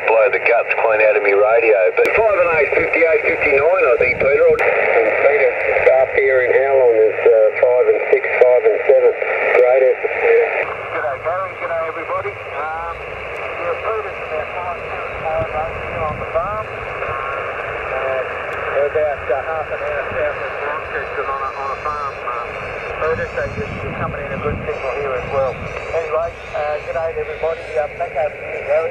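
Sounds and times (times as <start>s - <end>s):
narrow-band radio speech: 0.0s - 28.9s
receiver hiss: 0.0s - 28.9s.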